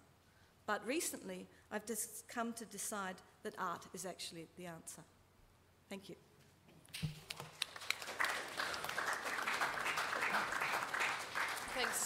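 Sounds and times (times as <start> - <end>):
audience applauding: 7.2 - 12.0.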